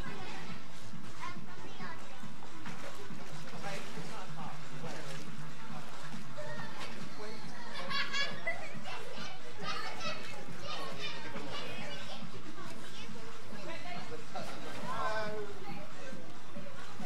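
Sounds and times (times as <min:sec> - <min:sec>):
children shouting in a pool: 0:06.4 - 0:13.2.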